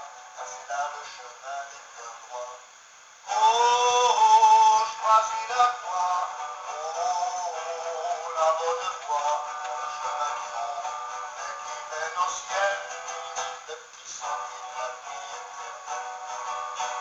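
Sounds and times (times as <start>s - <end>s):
hymn with musical accompaniment: 0.0s - 17.0s.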